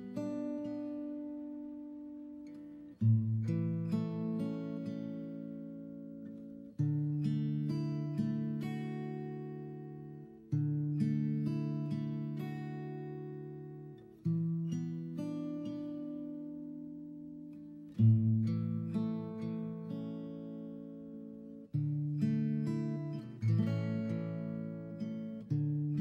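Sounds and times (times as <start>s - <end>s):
slow acoustic guitar chords: 0.0s - 26.0s.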